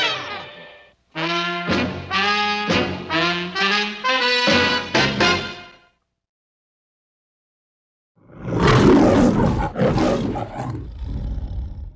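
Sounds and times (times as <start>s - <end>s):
lion roaring: 8.2s - 11.9s.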